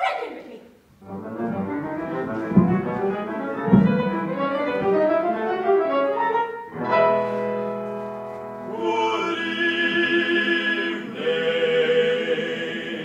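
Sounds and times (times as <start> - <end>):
strings and piano music: 1.0 - 8.8
short low thuds: 1.2 - 5.2.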